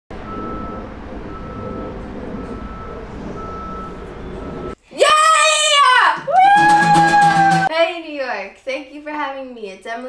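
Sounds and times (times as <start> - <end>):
engine rumble: 0.1 - 4.8
street noise: 0.1 - 4.8
reversing alarm beeping: 0.2 - 4.8.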